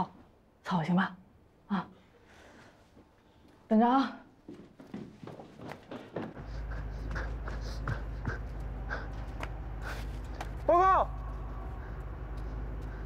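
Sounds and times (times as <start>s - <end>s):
steady low hum: 4.3s - 13.0s
footsteps on hard floor: 4.5s - 8.7s.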